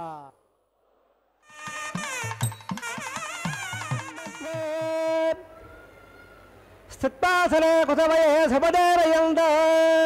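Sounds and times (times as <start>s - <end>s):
reedy wind instrument melody: 1.4s - 5.1s
drum strokes: 1.5s - 5.2s.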